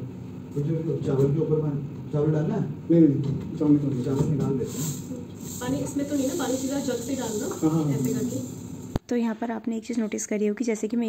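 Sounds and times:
steady high hiss: 4.4s - 9.0s.

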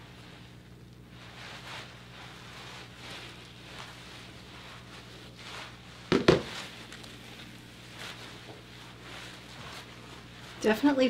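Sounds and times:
comb rustling through hair: 0.0s - 11.0s
low steady hum: 0.0s - 11.0s.

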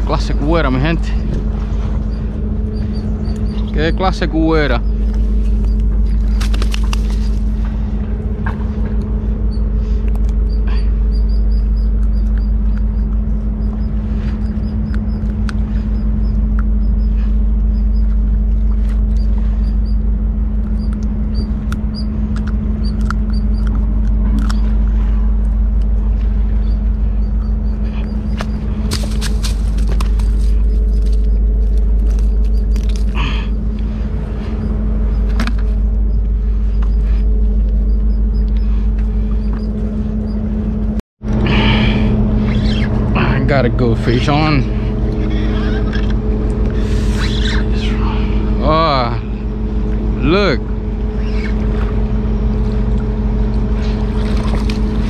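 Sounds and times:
low mechanical rumble: 0.0s - 55.0s.

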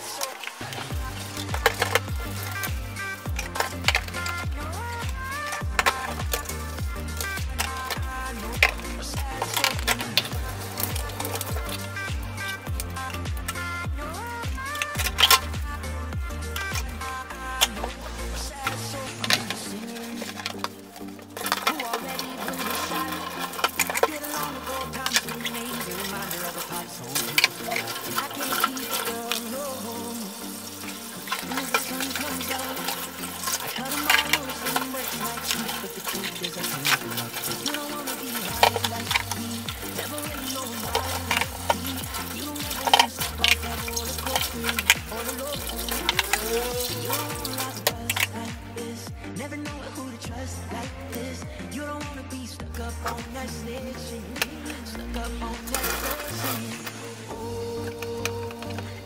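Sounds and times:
tap water running: 0.0s - 49.2s, 52.7s - 59.0s
pop song with bass beat: 0.0s - 59.0s.

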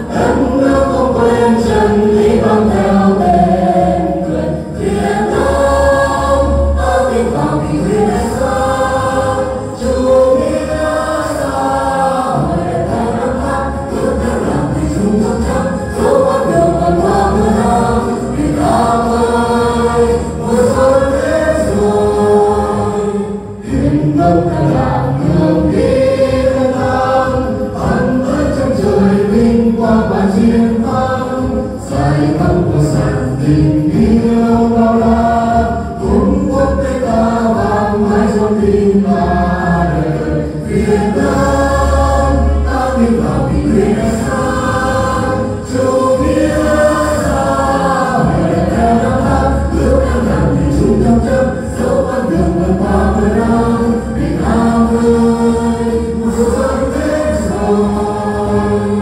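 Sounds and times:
backing music: 0.0s - 59.0s
group singing: 0.0s - 59.0s.

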